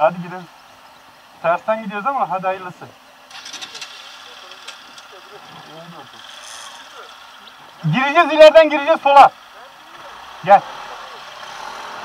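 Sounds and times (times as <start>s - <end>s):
faint voices: 2.8s - 12.0s
scooter engine idling: 3.0s - 11.4s.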